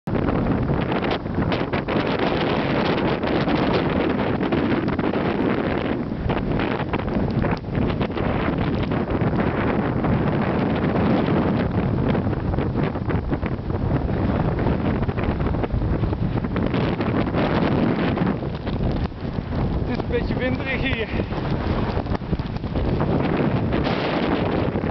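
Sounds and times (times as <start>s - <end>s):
wind buffeting microphone: 0.0s - 24.9s.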